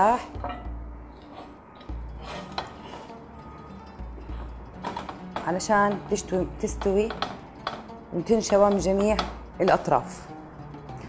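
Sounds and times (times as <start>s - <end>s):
faint background music: 0.0s - 11.0s
chicken pieces knocking in metal pan: 4.8s - 9.5s.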